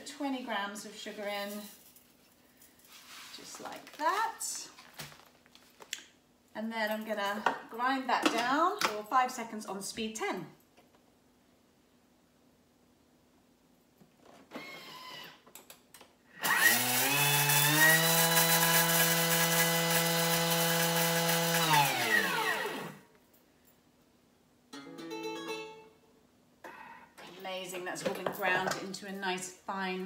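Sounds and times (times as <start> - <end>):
food processor motor whirring: 16.4 - 23.0.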